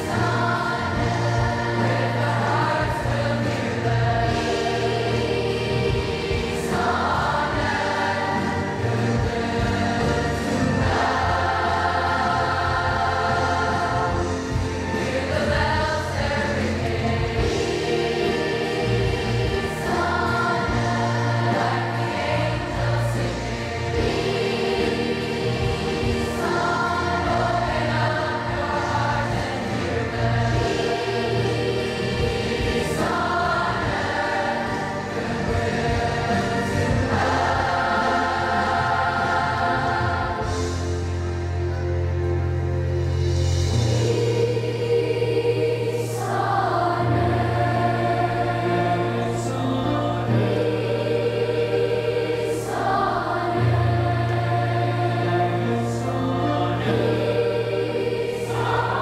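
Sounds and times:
children's choir singing: 0:00.0 - 0:42.6, 0:43.4 - 0:59.0
sustained low accompaniment: 0:00.0 - 0:59.0.

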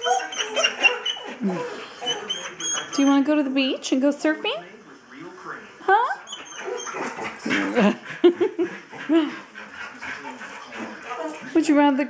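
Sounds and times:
dog yipping: 0:00.0 - 0:01.4, 0:02.0 - 0:03.2, 0:06.2 - 0:07.2
dog whining: 0:00.0 - 0:03.7, 0:06.2 - 0:07.9.

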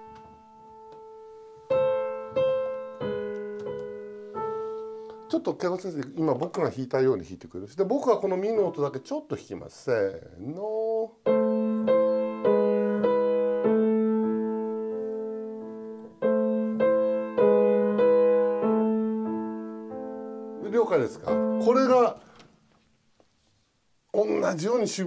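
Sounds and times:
two pianos playing slow piece: 0:00.0 - 0:05.6, 0:11.2 - 0:22.4
person's voice: 0:05.3 - 0:11.2, 0:20.6 - 0:22.2, 0:24.1 - 0:25.0.

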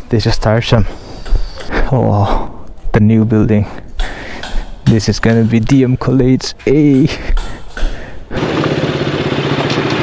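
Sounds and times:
motorcycle engine running: 0:08.4 - 0:10.0.

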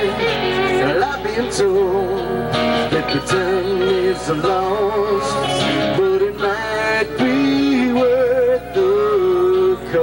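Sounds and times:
live rock-country band playing: 0:00.0 - 0:10.0.

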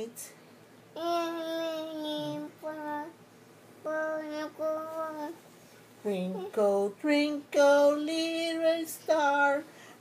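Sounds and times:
child singing: 0:01.0 - 0:03.2, 0:03.8 - 0:05.4.

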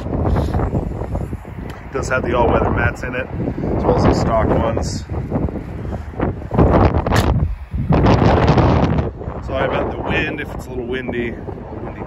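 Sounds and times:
wind gusting across microphone: 0:00.0 - 0:12.0.

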